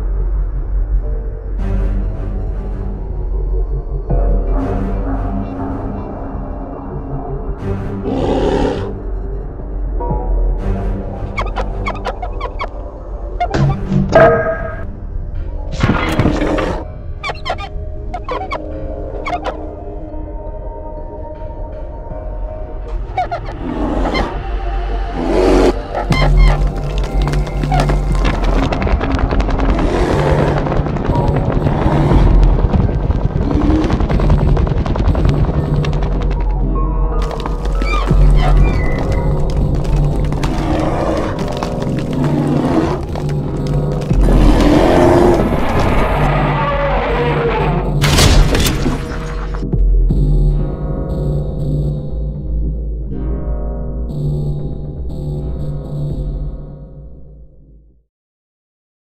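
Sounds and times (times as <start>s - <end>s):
dark droning horror music: 0.0s - 58.0s
high chirping squeaks: 17.2s - 18.6s, 37.7s - 39.3s
low rumble: 19.9s - 57.6s.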